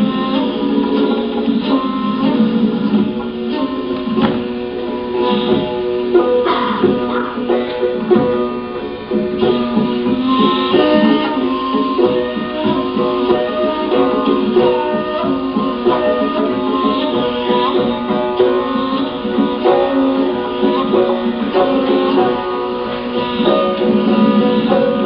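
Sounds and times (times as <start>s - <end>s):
plucked long-necked lute melody: 0.0s - 25.0s.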